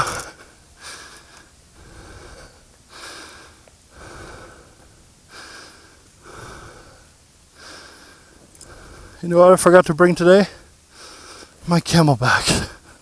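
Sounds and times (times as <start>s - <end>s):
person breathing heavily: 0.0s - 9.2s, 10.5s - 11.6s.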